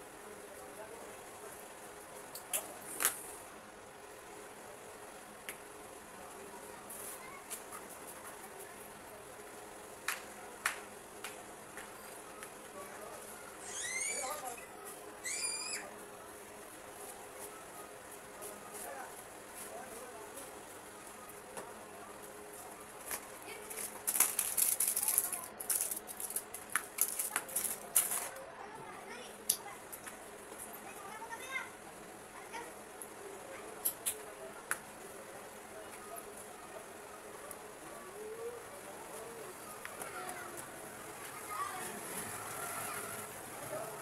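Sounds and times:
faint indistinct voices: 0.0s - 44.0s
plastic wrapper crinkling: 23.7s - 28.2s.

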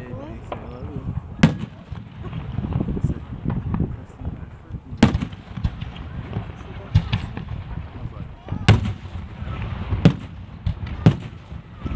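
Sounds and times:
distant firework pops and rumble: 0.3s - 11.9s
loud firework bang: 5.0s - 11.9s.

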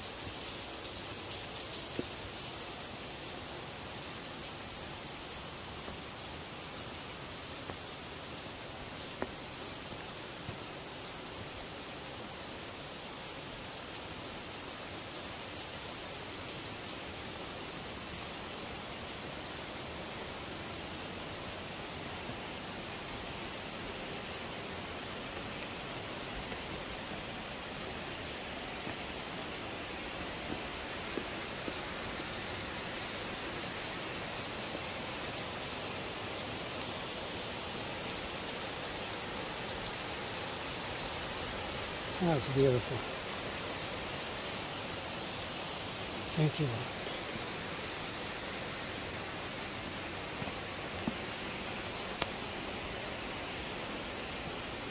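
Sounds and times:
rushing waterfall: 0.0s - 54.9s.

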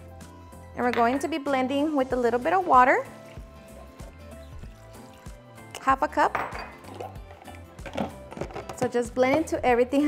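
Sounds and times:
background music with steady beat: 0.0s - 10.0s
water pouring into blender jar: 2.5s - 5.8s, 6.8s - 8.3s.

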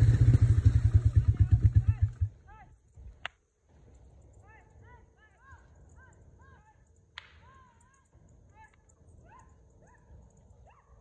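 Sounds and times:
bullwhip crack: 7.1s - 7.7s.

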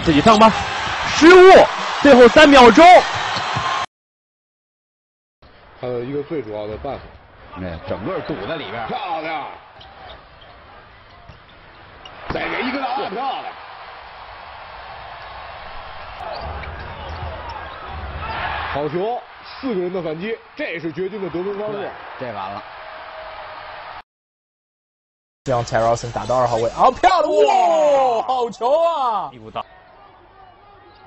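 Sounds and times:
arena crowd noise: 0.0s - 3.9s, 7.5s - 24.0s, 29.3s - 31.0s.

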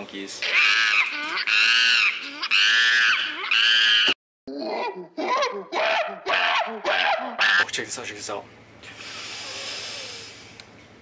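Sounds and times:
monkey-like screeches: 0.4s - 4.2s.

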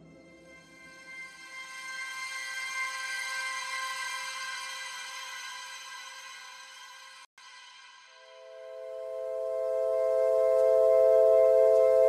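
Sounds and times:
sustained synth pad chord: 8.2s - 12.0s.

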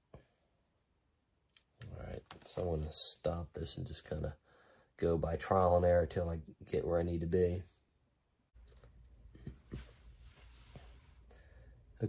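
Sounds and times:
man speaking: 1.8s - 4.4s, 5.0s - 7.7s.

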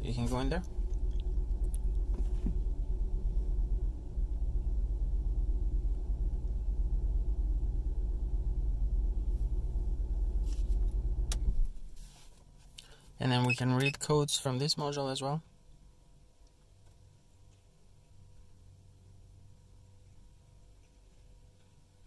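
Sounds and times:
car engine idling: 0.0s - 11.6s.

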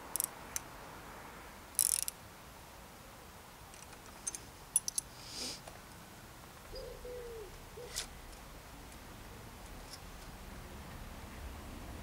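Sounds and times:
dove cooing: 6.7s - 8.1s.

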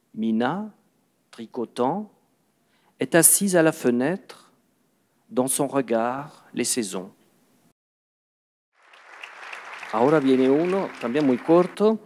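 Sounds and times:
audience applause: 8.8s - 12.0s.

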